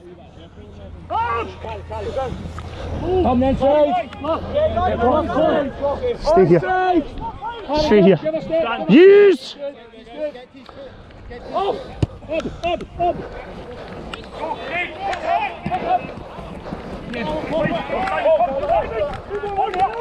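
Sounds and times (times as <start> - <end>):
players shouting and calling: 0.0 - 20.0.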